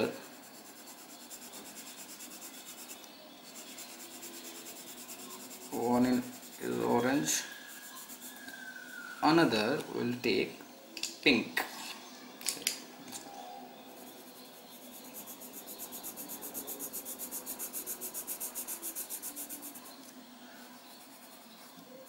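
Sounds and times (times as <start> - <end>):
pencil scratching on paper: 0.0 - 8.8, 13.8 - 22.0.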